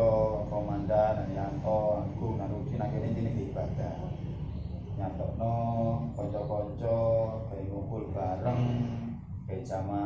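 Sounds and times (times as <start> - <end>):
man chanting in low tone: 0.0 - 10.0.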